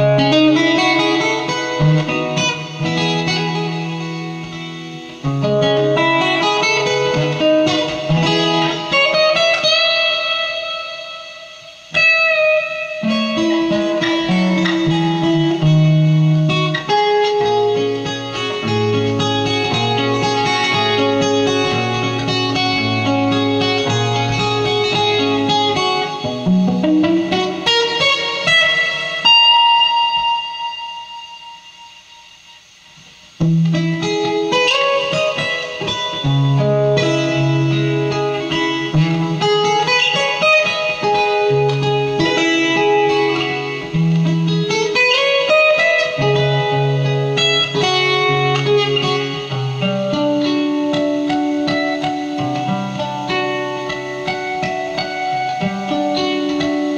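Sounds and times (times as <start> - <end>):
acoustic guitar playing: 0.0 - 56.9.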